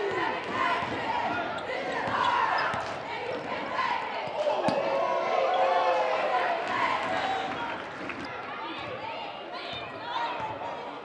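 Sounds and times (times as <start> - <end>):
crowd voices and shouts: 0.0 - 11.0.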